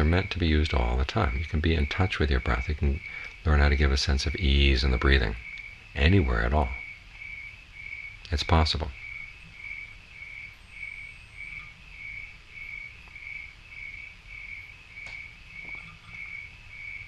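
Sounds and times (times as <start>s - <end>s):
cricket chirping: 0.0s - 17.0s
faint low hum: 0.0s - 17.0s.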